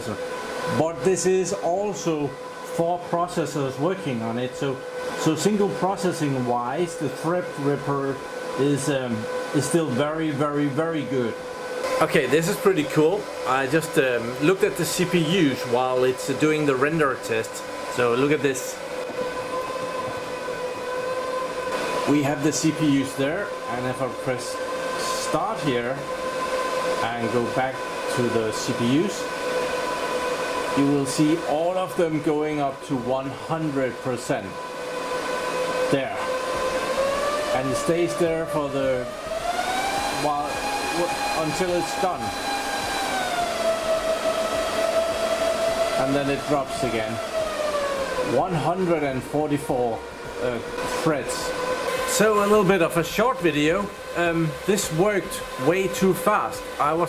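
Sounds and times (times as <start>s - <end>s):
server cooling fans whirring: 0.0s - 57.0s.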